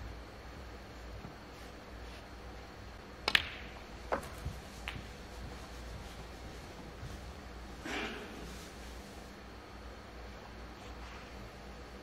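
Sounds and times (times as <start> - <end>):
cue striking ball click: 3.2 - 5.1
snooker balls clacking: 3.2 - 5.6.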